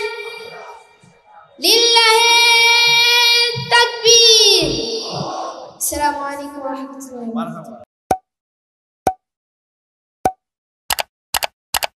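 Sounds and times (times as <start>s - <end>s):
quick double clicks: 10.9s - 12.0s.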